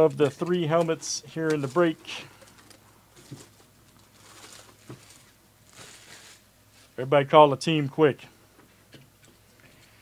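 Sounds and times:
plastic wrap crinkling: 0.0s - 7.0s.

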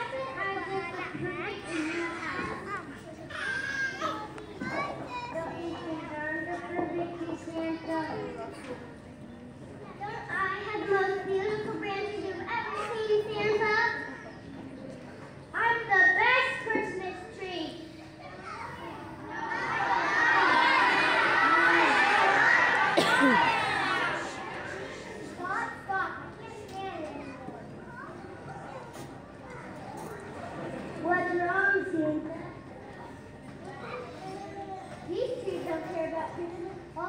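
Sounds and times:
children's voices talking: 0.0s - 37.0s.

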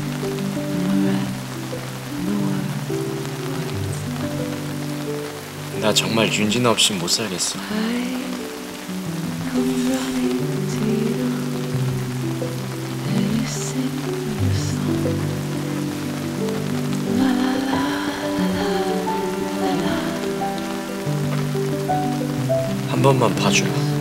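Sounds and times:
heavy rain: 0.0s - 24.0s
slow music with long held notes: 0.0s - 24.0s.

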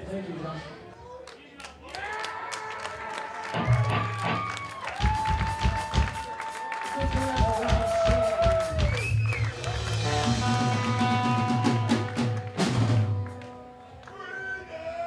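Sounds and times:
punk band playing live: 3.5s - 13.7s.

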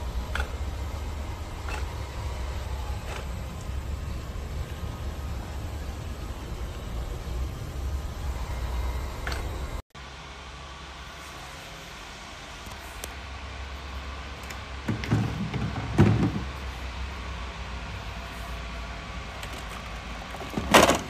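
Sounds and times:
low hum: 0.0s - 15.5s
plastic parts knocking and rubbing: 14.9s - 16.5s.

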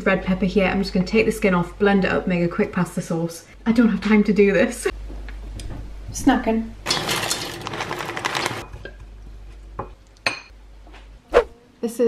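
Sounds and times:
dry pasta rattling into steel pot: 6.9s - 8.8s.

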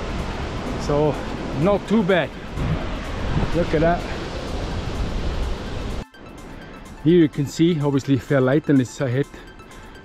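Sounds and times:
wind rushing over microphone: 0.0s - 6.0s.

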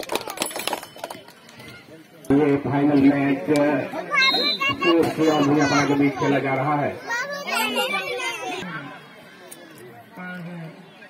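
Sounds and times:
crowd talking and calling out: 0.0s - 11.0s
high young voices: 3.9s - 8.9s.

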